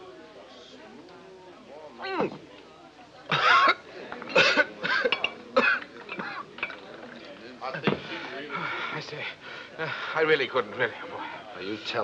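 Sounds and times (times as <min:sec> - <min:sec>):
quiet voices: 0:00.0 - 0:12.0
man coughing and spluttering: 0:03.3 - 0:06.6.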